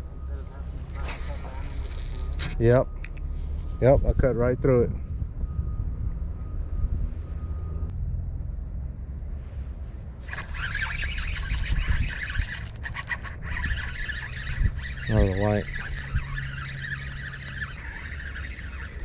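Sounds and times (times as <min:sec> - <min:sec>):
wind rumble on microphone: 0:00.0 - 0:19.0
fishing reel clicking: 0:10.3 - 0:19.0.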